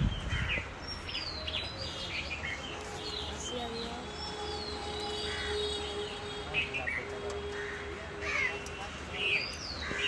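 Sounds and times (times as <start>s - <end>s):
crow cawing: 5.2s - 5.8s, 7.5s - 8.7s.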